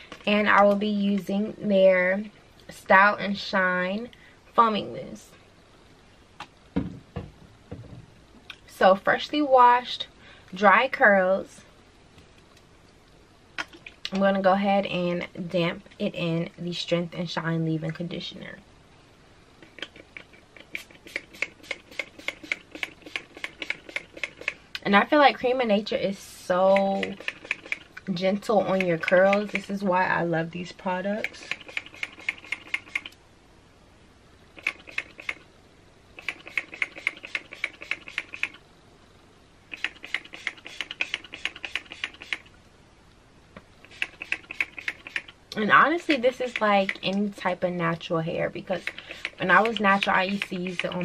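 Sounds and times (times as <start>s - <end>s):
spray bottle spritzing: 20.6s - 24.6s, 34.6s - 35.4s, 36.2s - 38.6s, 39.7s - 42.5s, 43.8s - 45.3s.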